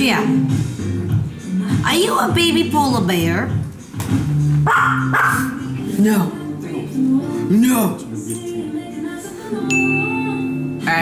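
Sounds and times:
background music: 0.0s - 11.0s
dog barking: 4.6s - 5.6s.

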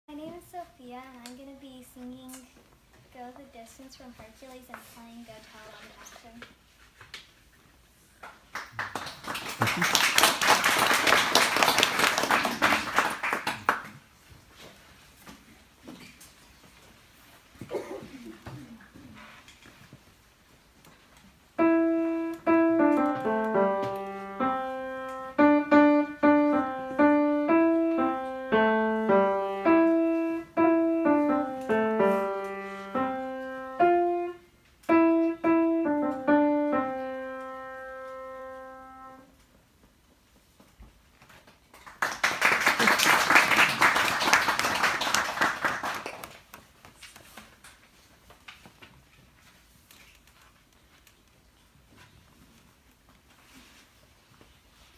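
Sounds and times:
audience applause: 8.5s - 14.0s, 41.8s - 46.4s
piano melody in single notes: 21.6s - 39.2s.

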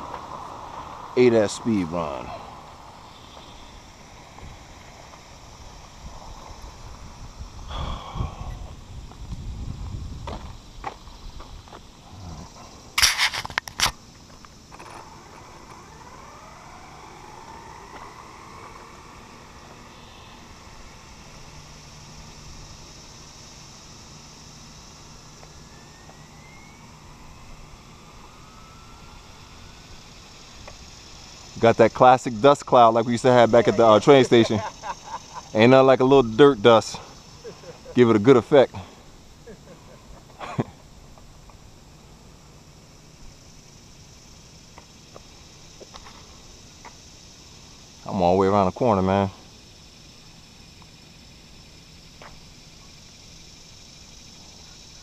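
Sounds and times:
faint motor whine gliding in pitch: 0.0s - 55.0s
rc car motor rumbling: 0.0s - 55.0s.

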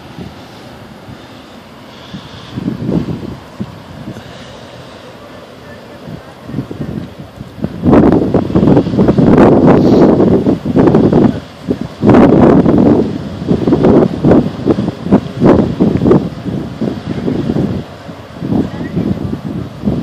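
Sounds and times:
wind gusting across microphone: 0.0s - 20.0s.

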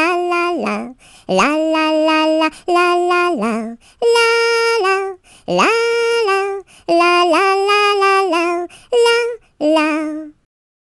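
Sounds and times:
high voice singing: 0.0s - 10.5s.

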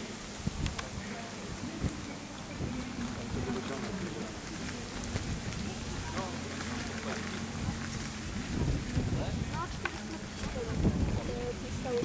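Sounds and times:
faint voices: 0.0s - 12.0s
wind noise on microphone: 0.0s - 12.0s.

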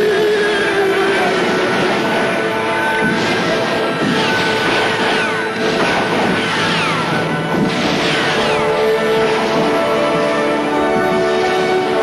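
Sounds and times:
film soundtrack music: 0.0s - 12.0s.

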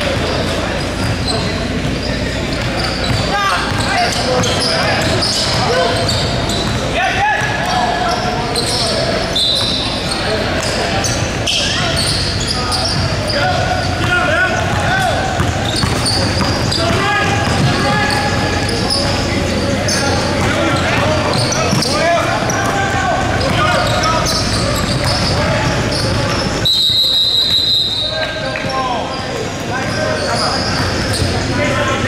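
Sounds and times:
people calling out and talking: 0.0s - 32.0s
sneakers squeaking: 0.0s - 32.0s.

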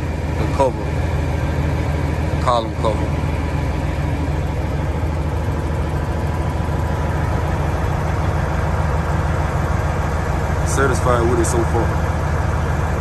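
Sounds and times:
diesel truck engine idling: 0.0s - 13.0s.

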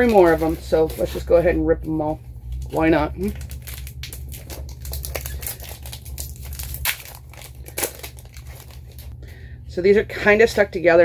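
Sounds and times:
card wrappers tearing and crinkling: 2.5s - 9.2s.

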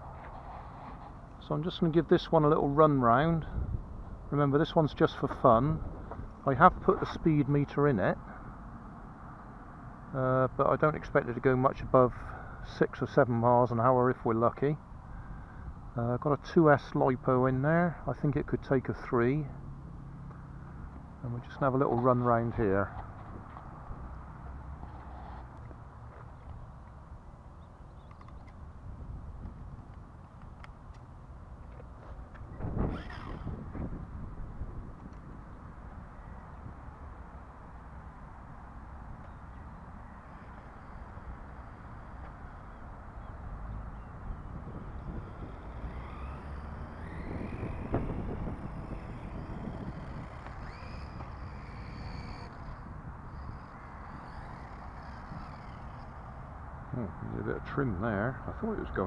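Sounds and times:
electric motor whine: 32.5s - 36.8s, 39.2s - 56.9s.

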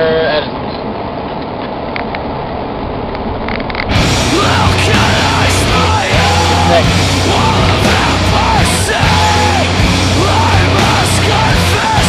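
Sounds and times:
car cabin road and engine noise: 0.2s - 7.6s
loud heavy rock music: 3.9s - 12.0s.

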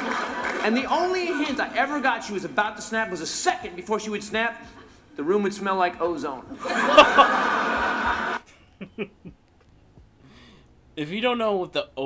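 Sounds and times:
audience laughter: 0.0s - 0.7s, 6.6s - 9.1s.

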